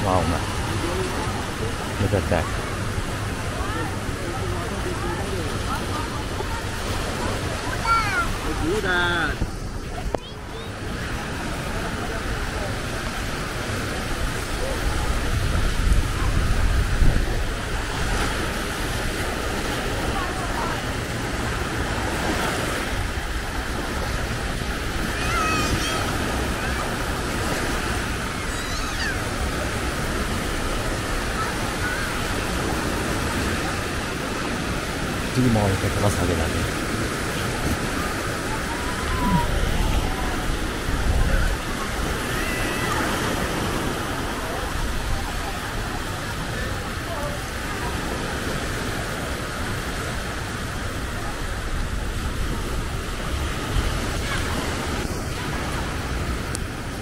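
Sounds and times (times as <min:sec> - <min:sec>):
surf washing onto beach: 0:00.0 - 0:57.0
wind buffeting microphone: 0:00.0 - 0:57.0.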